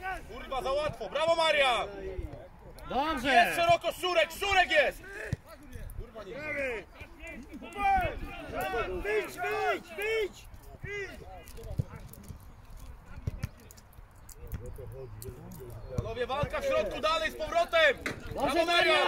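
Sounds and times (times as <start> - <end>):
men shouting calls: 2.8 - 5.4, 6.2 - 12.2, 16.1 - 19.0.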